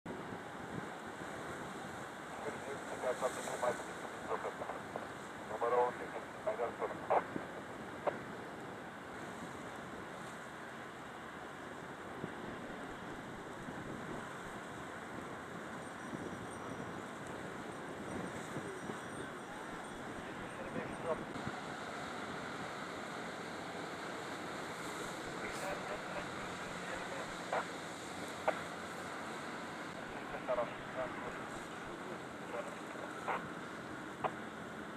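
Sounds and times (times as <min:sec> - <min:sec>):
wind on microphone: 0:00.1 - 0:02.1, 0:12.1 - 0:34.4
indistinct voices: 0:23.7 - 0:29.2, 0:29.8 - 0:33.6.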